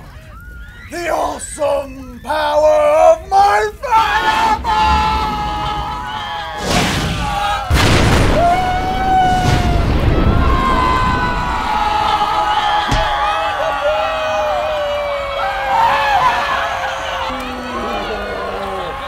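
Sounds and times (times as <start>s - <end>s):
men yelling and whooping: 0.0s - 19.0s
fireball explosion: 6.6s - 13.6s.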